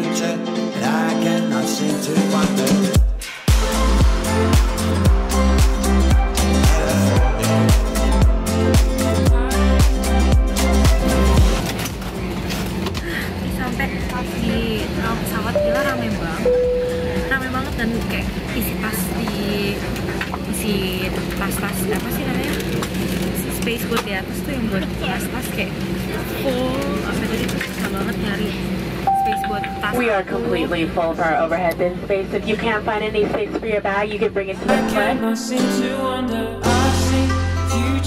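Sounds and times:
dance music with steady beat: 2.2 - 11.6
airliner cabin hum: 11.3 - 34.6
crew announcement over speaker: 13.5 - 35.1
public address chime: 15.4 - 18.2, 29.1 - 30.3.

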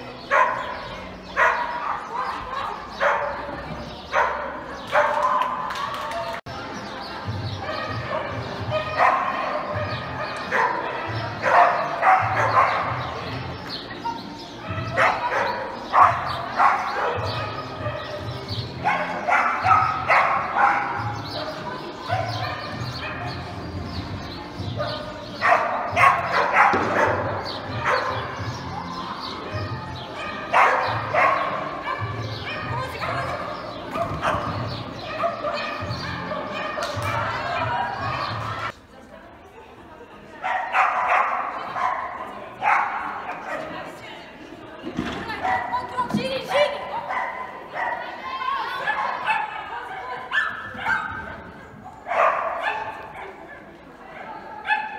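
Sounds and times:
dog barking rapidly: 0.3 - 6.1, 7.6 - 13.2, 14.6 - 23.5, 24.7 - 38.4, 40.4 - 43.8, 46.4 - 48.2, 48.8 - 51.3, 52.1 - 53.4.

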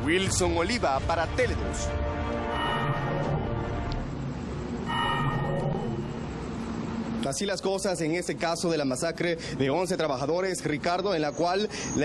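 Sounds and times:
music sting with bell-like tones: 2.5 - 3.8, 4.8 - 6.6.

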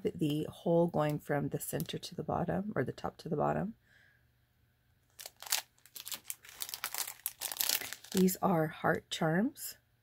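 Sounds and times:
plastic bags crinkling: 5.1 - 8.4.

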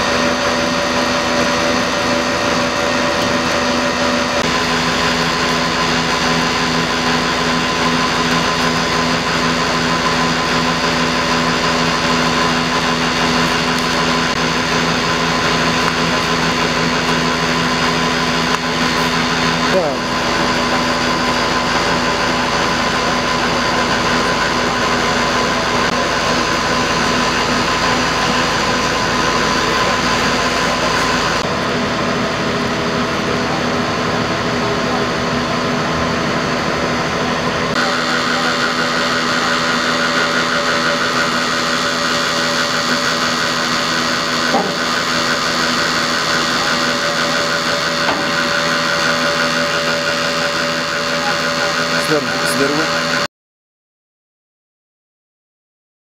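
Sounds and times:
vehicle engine idling: 0.0 - 52.8.

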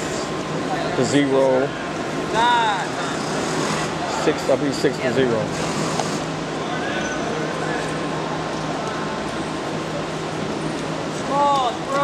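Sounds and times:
gym background noise: 0.0 - 12.0.

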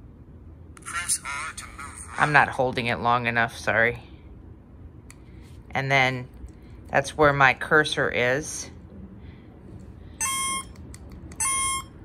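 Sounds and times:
electronic buzzer beep: 10.2 - 10.8, 11.4 - 12.0.

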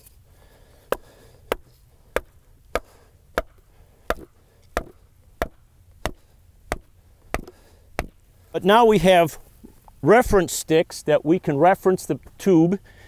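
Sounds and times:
wooden mallet driving stake: 0.9 - 8.2.

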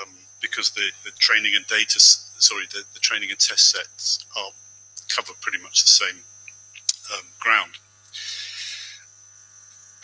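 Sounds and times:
low mains hum: 0.0 - 10.0
breath into a microphone: 8.1 - 9.1.

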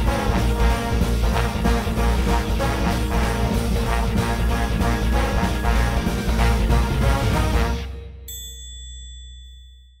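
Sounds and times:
bright bell-like ding: 8.3 - 10.0.

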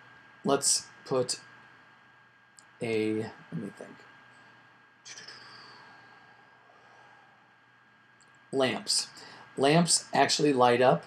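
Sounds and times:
soft hiss: 0.0 - 11.0
thin steady whine: 0.0 - 11.0.

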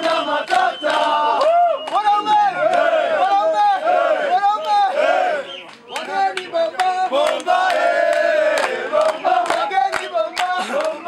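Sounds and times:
hand clapping: 0.0 - 3.4, 5.6 - 11.0
group of voices singing: 0.0 - 11.0.

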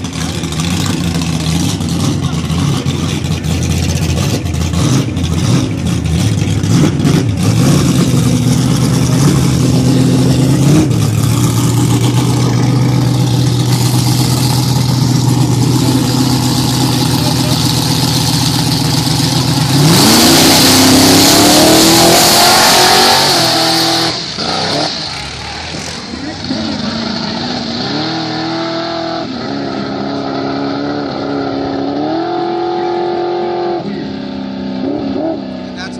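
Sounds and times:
drag car engine revving: 0.0 - 35.9.

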